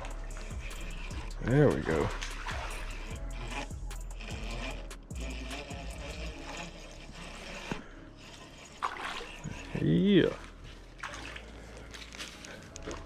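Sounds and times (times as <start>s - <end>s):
fish splashing: 0.0s - 3.4s, 7.7s - 13.0s
fishing reel clicking and whirring: 0.0s - 13.0s.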